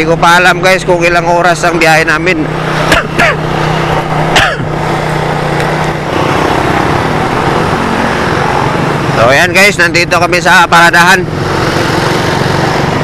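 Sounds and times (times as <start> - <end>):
motorcycle engine running: 0.0 - 13.0
wind and road noise: 0.0 - 13.0.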